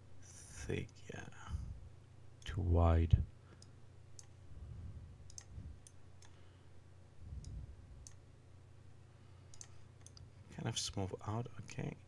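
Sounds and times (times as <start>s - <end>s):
faint low hum: 0.0s - 12.0s
computer mouse clicking: 3.6s - 4.4s, 5.3s - 6.4s, 7.4s - 8.2s, 9.5s - 10.3s.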